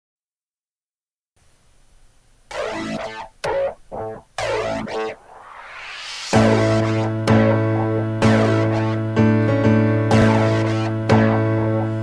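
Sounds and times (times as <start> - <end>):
piano chords: 2.5 - 12.0.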